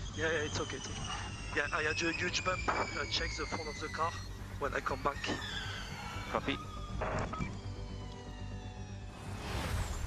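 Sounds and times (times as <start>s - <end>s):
electric race car whine: 0.0s - 9.2s
rising whoosh transition: 9.2s - 10.0s.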